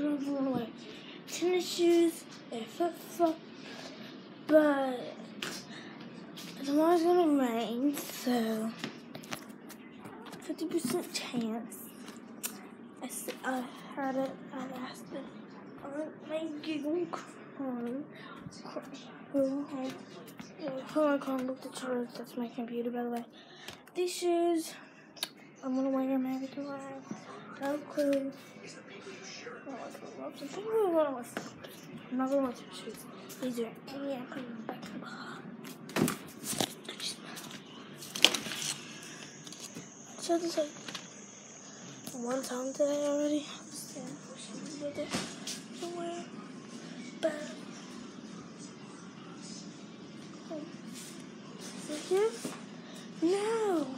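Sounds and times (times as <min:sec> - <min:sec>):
girl speaking: 0:00.0 - 0:03.4, 0:04.5 - 0:05.2, 0:06.6 - 0:08.9, 0:10.4 - 0:12.0, 0:13.0 - 0:18.1, 0:20.6 - 0:23.3, 0:23.9 - 0:24.8, 0:30.4 - 0:31.4, 0:32.1 - 0:35.3, 0:40.2 - 0:40.8, 0:42.1 - 0:46.3, 0:51.9 - 0:52.6, 0:53.2 - 0:53.9.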